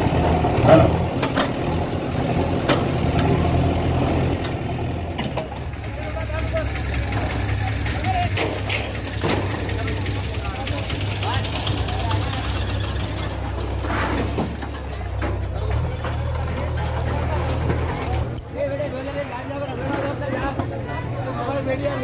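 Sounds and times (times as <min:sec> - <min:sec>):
vehicle engine idling: 0:00.0 - 0:22.0
voices: 0:00.0 - 0:22.0.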